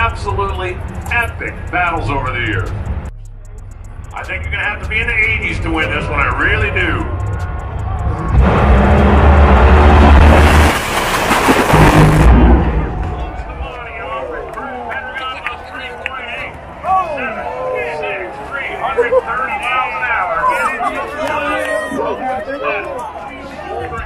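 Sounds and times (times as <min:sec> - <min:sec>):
crowd shouting and cheering: 0:00.0 - 0:10.6, 0:12.5 - 0:24.0
dragster engines at full throttle: 0:04.2 - 0:13.6
engine exploding: 0:07.9 - 0:13.6.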